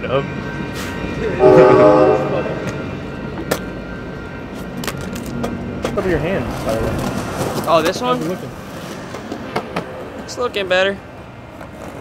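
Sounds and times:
low hum of street traffic: 0.0 - 12.0
train horn: 1.4 - 3.5.

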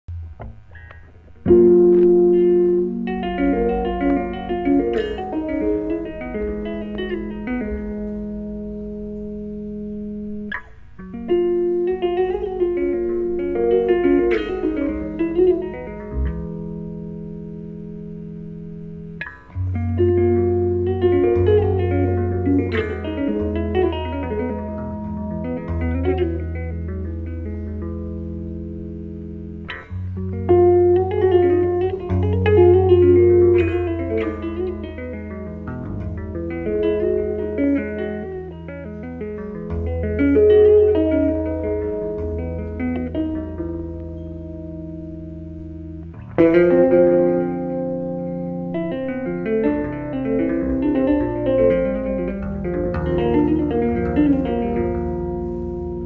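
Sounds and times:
electric bass chords: 0.0 - 56.0.

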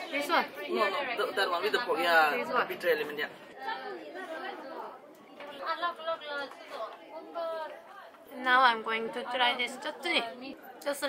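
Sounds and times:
voices talking in background: 0.0 - 11.0.

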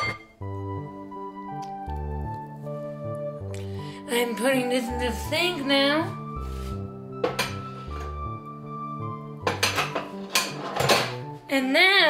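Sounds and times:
dishes clinking in a sink: 0.0 - 0.3, 9.4 - 11.2
background music: 0.0 - 12.0.

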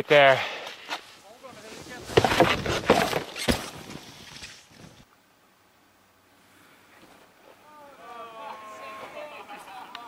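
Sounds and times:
snowboard scraping on snow: 1.0 - 5.0
voices: 6.7 - 10.0.

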